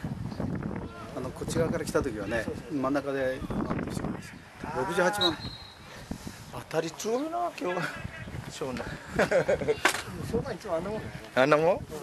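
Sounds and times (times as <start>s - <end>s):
person giving drawn-out call: 4.6s - 5.5s.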